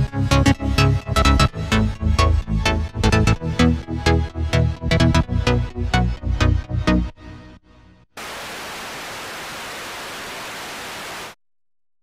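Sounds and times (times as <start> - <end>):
static hiss: 8.2 - 11.4.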